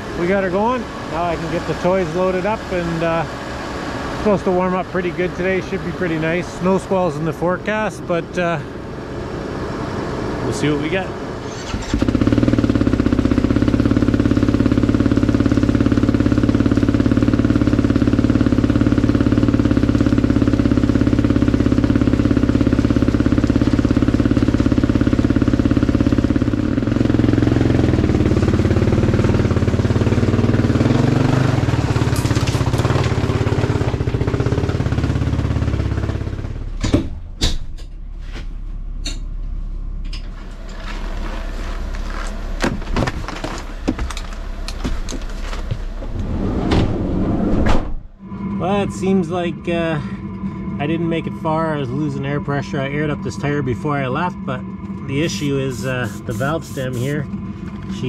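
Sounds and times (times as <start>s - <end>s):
snow bike engine revving: 0.0s - 8.8s, 9.4s - 36.7s, 48.6s - 57.3s
sharp knocks and clanks: 36.8s - 38.0s.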